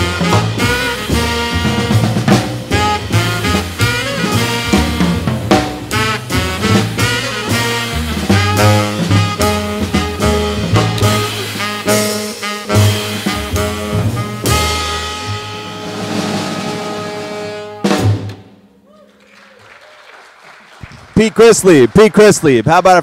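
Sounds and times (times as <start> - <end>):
upright bass: 0.0 - 18.1
saxophones: 0.0 - 18.2
drum kit with cymbals: 0.0 - 18.6.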